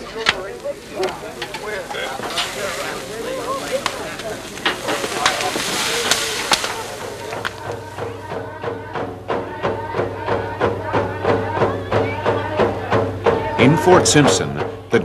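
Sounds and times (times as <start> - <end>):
crowd chatter: 0.0 - 15.0
meat sizzling on a grill: 0.7 - 7.4
steady drumming: 1.0 - 15.0.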